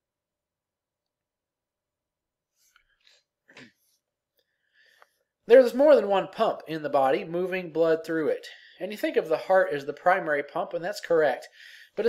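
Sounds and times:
faint breathing at microphone: 4.4s - 5.3s, 11.5s - 12.0s.

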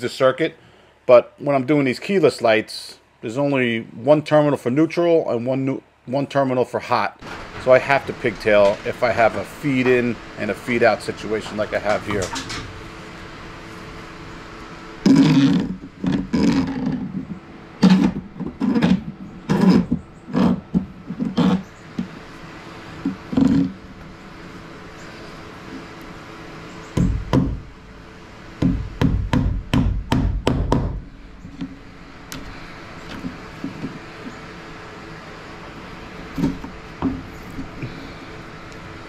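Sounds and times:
faint steady hum: 0.0s - 39.0s
dull thumps: 27.0s - 27.8s, 28.6s - 34.4s, 36.3s - 38.0s.

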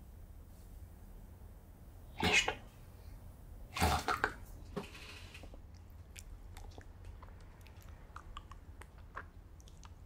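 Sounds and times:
faint low room hum: 0.0s - 10.0s.

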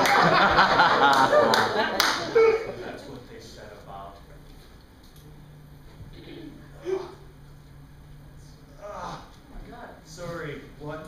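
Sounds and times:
audience applauding: 0.0s - 2.4s
audience laughing: 0.0s - 3.0s.

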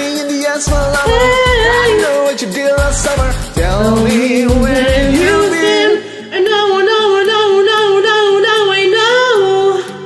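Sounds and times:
pop backing track: 0.0s - 10.0s.

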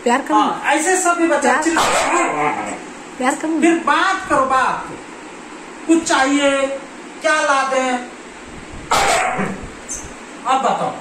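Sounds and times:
husky yowling: 1.8s - 2.8s, 8.9s - 9.6s.

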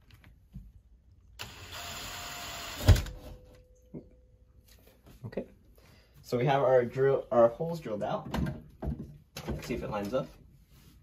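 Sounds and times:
cordless drill boring into wall: 1.4s - 3.2s.

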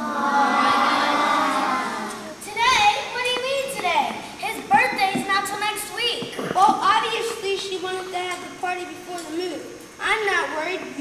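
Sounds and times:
children talking: 0.0s - 11.0s.

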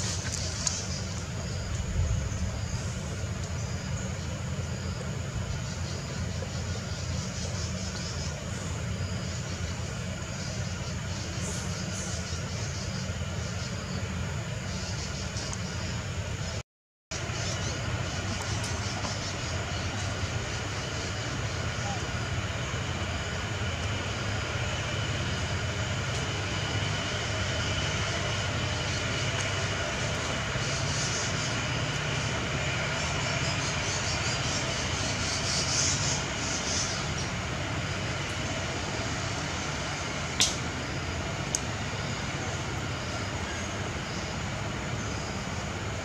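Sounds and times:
low hum: 0.0s - 46.0s.

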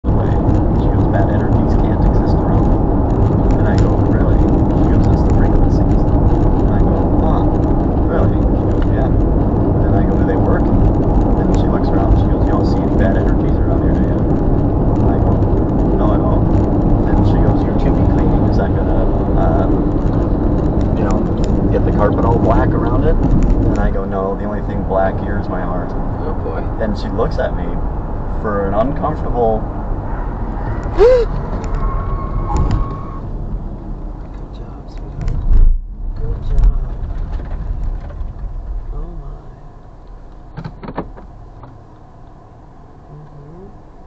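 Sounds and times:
car road and engine noise: 0.0s - 44.0s.

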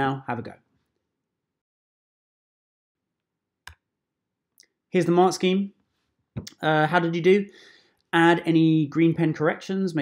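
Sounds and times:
man speaking: 0.0s - 0.7s, 4.9s - 5.8s, 6.4s - 10.0s.

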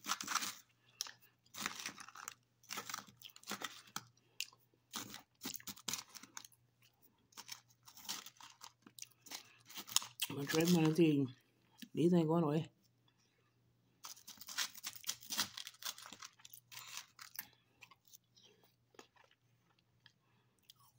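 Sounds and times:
chewing crunchy frozen grapes: 0.0s - 12.0s, 14.0s - 20.9s.

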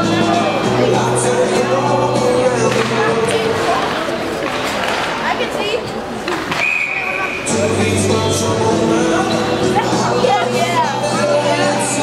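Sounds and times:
crowd voices: 0.0s - 12.0s
referee's whistle blast: 6.6s - 7.5s.

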